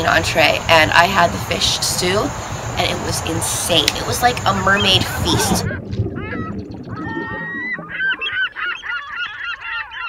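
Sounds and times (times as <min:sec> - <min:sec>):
flock of birds honking: 0:07.1 - 0:10.0.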